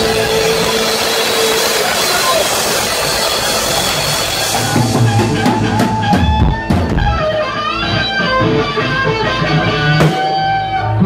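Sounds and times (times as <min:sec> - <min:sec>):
loud steady wash of noise: 0:00.0 - 0:06.1.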